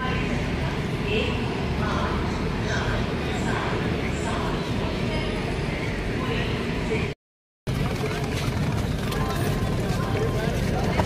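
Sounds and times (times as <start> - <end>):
suitcase wheels rumbling on tiles: 7.7 - 11.0.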